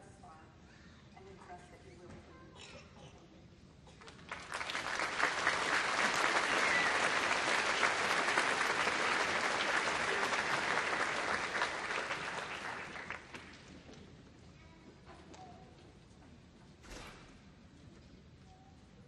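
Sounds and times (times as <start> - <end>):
audience applauding: 4.1 - 13.7.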